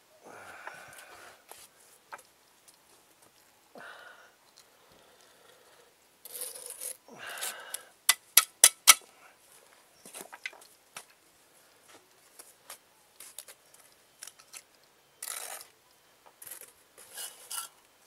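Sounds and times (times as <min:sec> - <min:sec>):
trowel tapping: 0:08.1 - 0:09.0
trowel scraping mortar on brick: 0:17.0 - 0:17.8.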